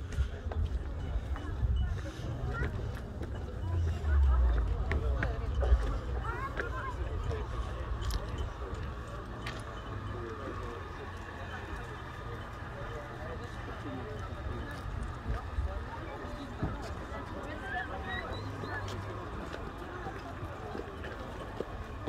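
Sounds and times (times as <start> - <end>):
steady low rumble: 0.0 - 9.4
chatter of many people: 0.0 - 22.0.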